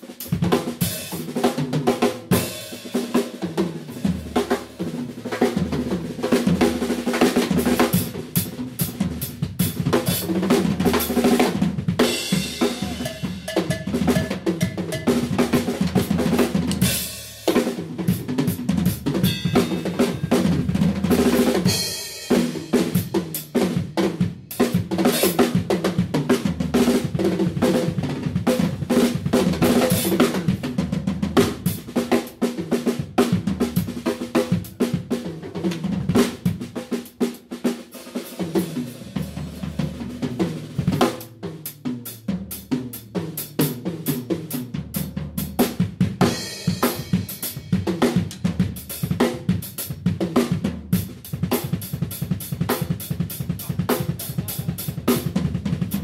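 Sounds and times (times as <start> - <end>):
drum kit solo: 0.0 - 56.0.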